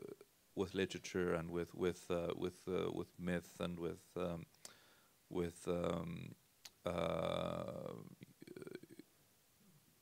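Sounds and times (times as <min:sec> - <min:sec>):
man's creaky hesitation sound: 0:06.7 - 0:09.1.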